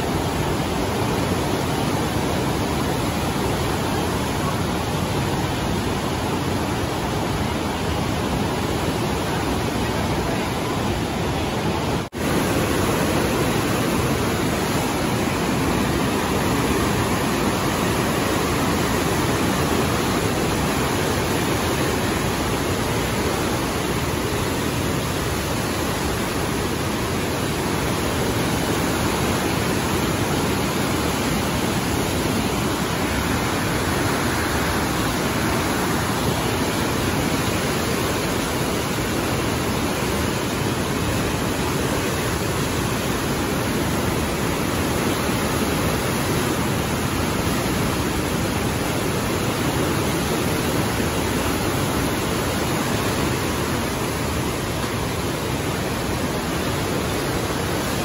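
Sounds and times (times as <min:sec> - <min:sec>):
rapids rushing: 0:00.0 - 0:58.0.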